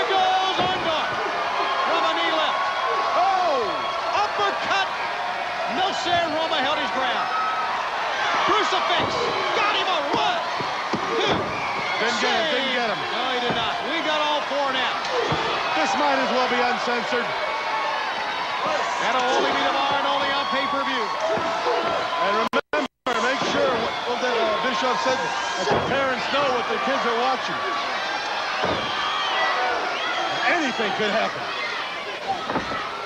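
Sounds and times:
crowd shouting and cheering: 0.0s - 33.0s.

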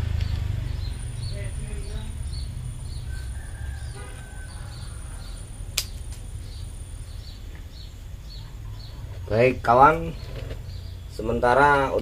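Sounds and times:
steady low rumble: 0.0s - 11.6s
small bird chirping: 0.0s - 12.0s
sharp click: 5.8s - 6.2s.

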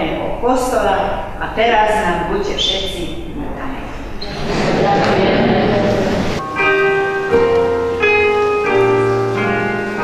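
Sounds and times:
keyboard sustained chords: 4.3s - 10.0s.

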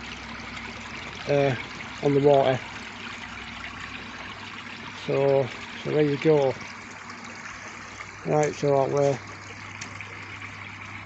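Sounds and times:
low steady hum: 0.0s - 11.0s
water trickling and splashing: 0.0s - 11.0s.

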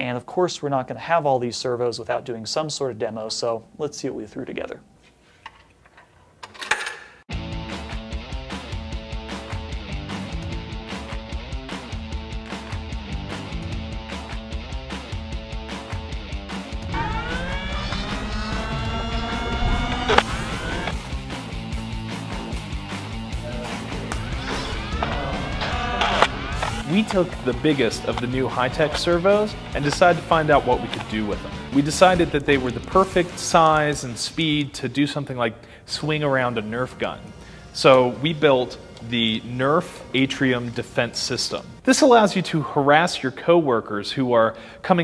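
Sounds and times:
rock music with guitar: 7.3s - 34.0s
rising synth glides: 16.8s - 21.1s, 23.4s - 28.1s.

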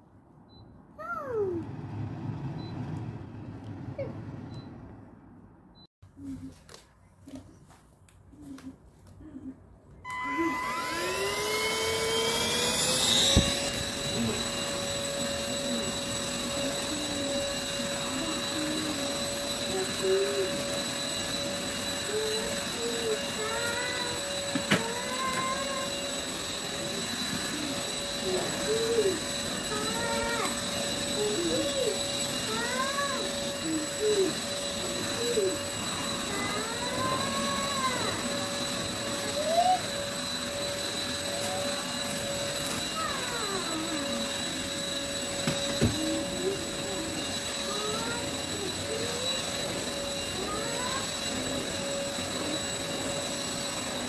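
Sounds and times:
stick vacuum cleaner motor whine: 10.0s - 54.0s.

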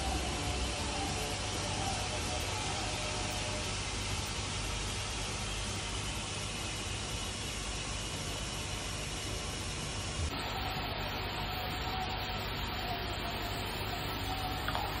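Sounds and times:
steady hissing noise: 0.0s - 15.0s.

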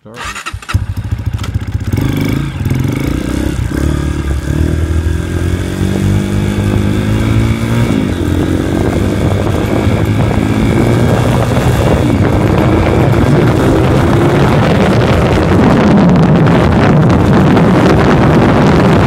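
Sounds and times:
dirt bike engine revving: 0.1s - 19.0s.

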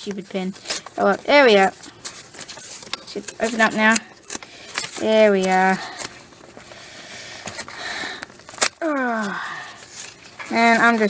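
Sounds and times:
packaging rustling and scraping: 0.1s - 11.0s.

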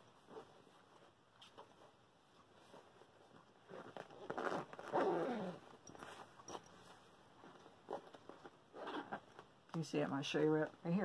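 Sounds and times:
zipper and bag rustling: 0.0s - 1.9s, 2.5s - 9.6s.

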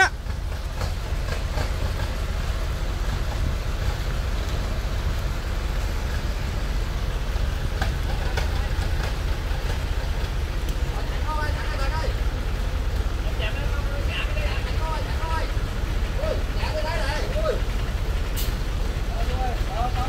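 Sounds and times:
truck engine rumbling: 0.0s - 20.0s.

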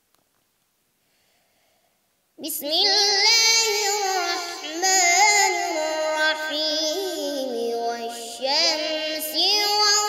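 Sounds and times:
boy chanting melodically: 2.4s - 10.0s.

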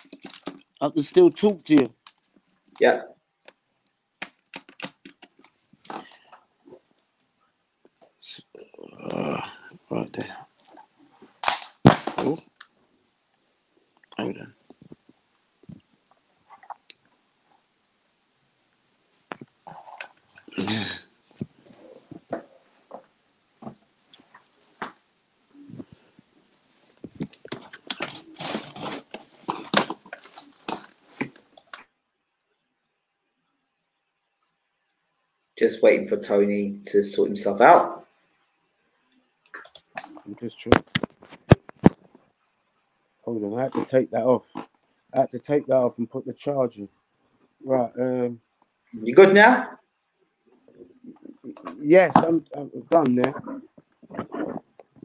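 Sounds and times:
faint clicks and handling noises: 0.0s - 0.9s, 1.6s - 8.2s, 21.3s - 32.0s, 39.2s - 42.4s
device handling noise: 4.2s - 6.3s, 11.4s - 12.7s
faint voice: 8.2s - 10.4s.

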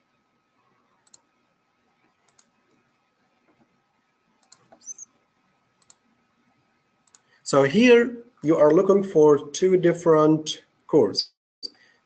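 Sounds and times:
computer mouse clicks: 1.0s - 1.4s, 2.0s - 2.8s, 4.4s - 5.1s, 5.8s - 6.1s, 7.0s - 7.4s.

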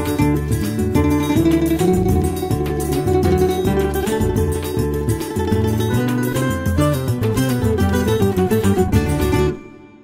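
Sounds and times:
plucked guitar jingle: 0.0s - 10.0s.

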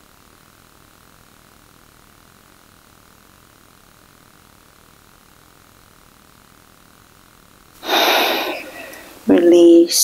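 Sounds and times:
forceful breath out through nose: 7.8s - 9.2s.

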